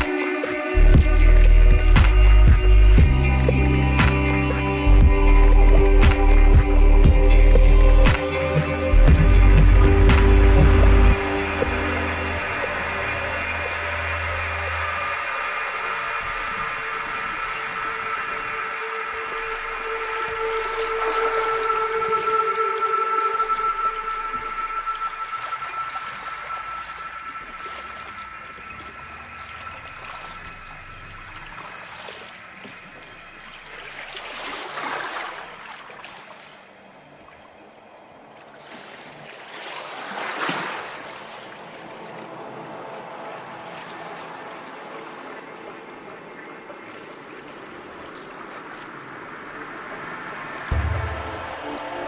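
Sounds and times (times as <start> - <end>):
ambient music of held tones: 0.0 - 35.7, 40.6 - 52.0
water rushing and bubbling: 0.0 - 52.0.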